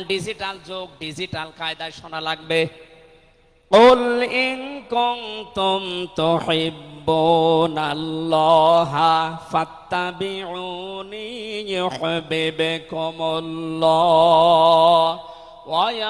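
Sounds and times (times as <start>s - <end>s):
man chanting into a microphone: 0.0s - 16.0s.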